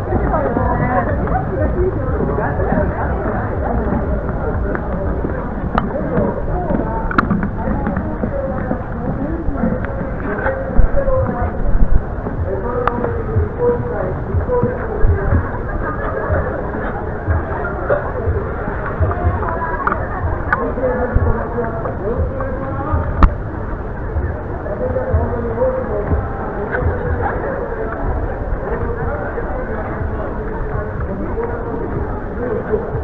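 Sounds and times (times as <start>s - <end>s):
crowd chattering: 0.0s - 33.0s
low rumble: 0.0s - 33.0s.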